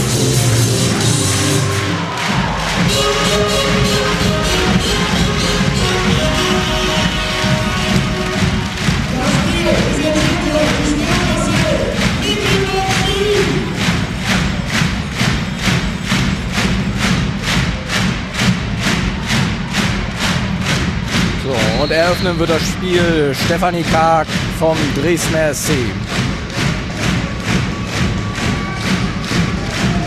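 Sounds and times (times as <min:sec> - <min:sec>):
arena music: 0:00.0 - 0:30.0
crowd noise: 0:00.0 - 0:30.0
steady beat: 0:00.0 - 0:30.0
voices: 0:21.4 - 0:26.1.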